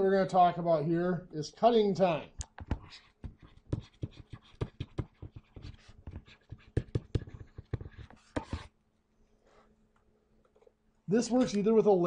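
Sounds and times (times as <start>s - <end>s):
stylus tapping and scratching: 2.3s - 8.7s.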